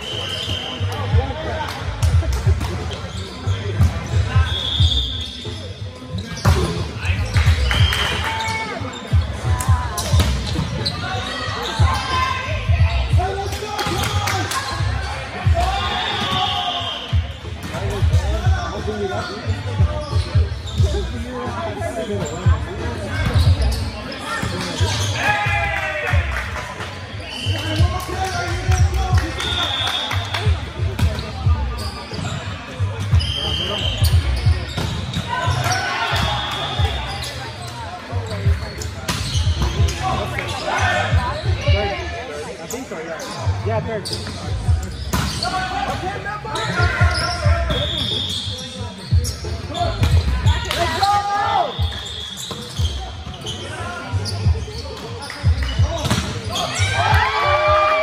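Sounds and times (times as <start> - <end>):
sneaker squeaks: 0.0 - 1.2, 2.0 - 25.3, 27.1 - 57.5
players shouting: 56.4 - 58.0.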